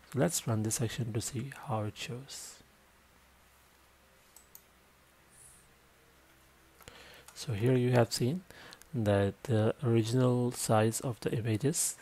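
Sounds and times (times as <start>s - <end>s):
faint clicks: 4.3s - 4.7s.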